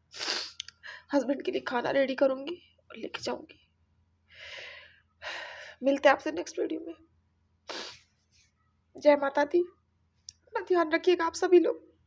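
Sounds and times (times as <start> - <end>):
woman breathing: 0.2 - 1.1, 4.3 - 5.8
woman speaking: 0.9 - 3.5, 5.8 - 7.0, 9.0 - 9.7, 10.4 - 11.8.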